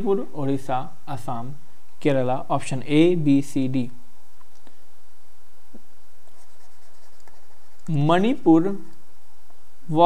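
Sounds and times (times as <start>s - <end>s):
low background hum: 0.0s - 10.0s
stylus scratching on tablet: 6.2s - 9.0s.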